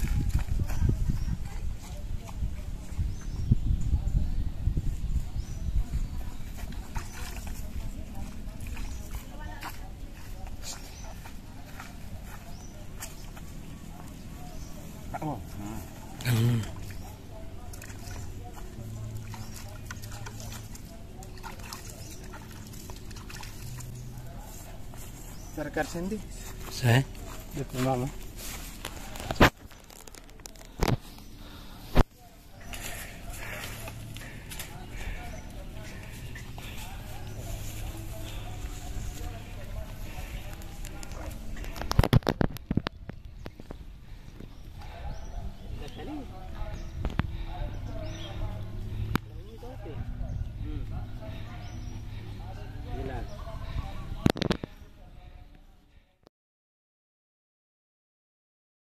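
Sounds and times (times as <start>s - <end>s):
people talking: 0.0s - 23.1s, 23.8s - 43.6s, 44.6s - 55.8s.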